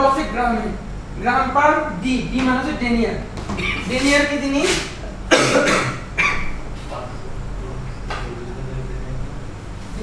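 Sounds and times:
person coughing: 5.3s - 6.5s.

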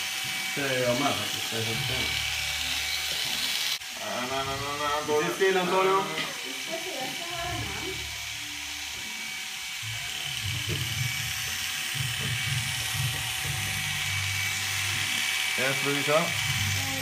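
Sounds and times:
electric hair clipper buzzing: 0.0s - 17.0s.

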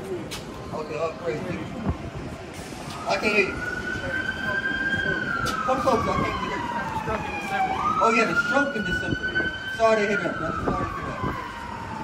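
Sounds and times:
emergency siren wailing: 2.6s - 12.0s.

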